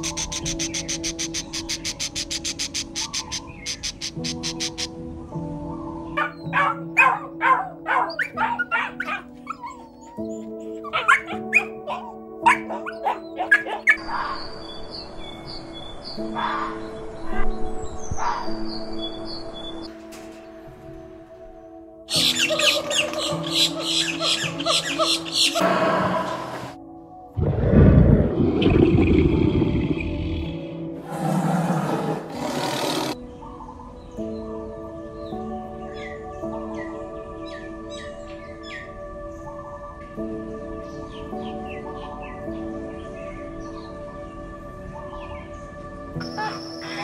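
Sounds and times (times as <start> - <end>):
high chirping calls: 0.0 - 4.9, 22.1 - 26.7
gentle piano music: 0.0 - 31.0, 33.1 - 47.0
puppy yapping: 6.2 - 9.9, 10.8 - 14.0.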